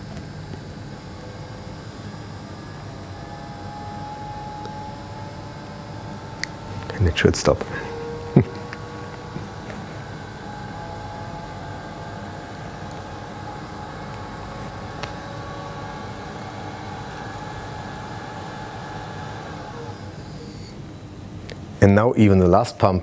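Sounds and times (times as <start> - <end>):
water pump whining: 0.0 - 21.0
low hum: 0.0 - 21.3.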